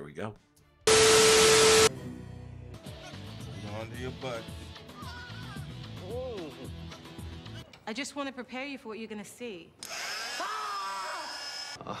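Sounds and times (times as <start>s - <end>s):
steady beep tone: 0.9s - 1.9s
tv static burst: 0.9s - 1.9s.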